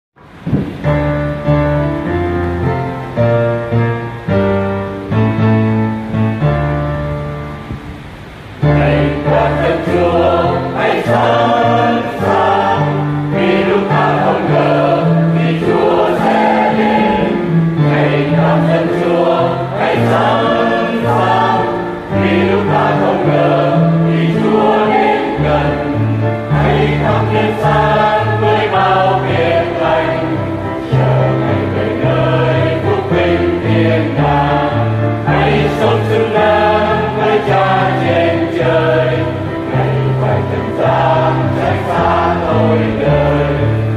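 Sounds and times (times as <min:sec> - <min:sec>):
choir singing a hymn: 0:08.6 - 0:43.9.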